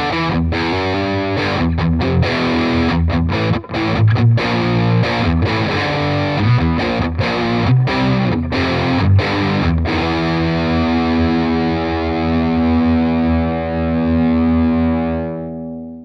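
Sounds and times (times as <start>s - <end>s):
distorted electric guitar: 0.0s - 16.0s.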